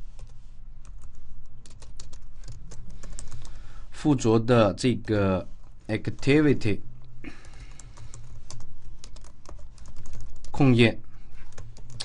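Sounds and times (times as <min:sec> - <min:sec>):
keyboard typing: 0:00.2 - 0:03.6, 0:07.4 - 0:10.7, 0:11.4 - 0:12.0.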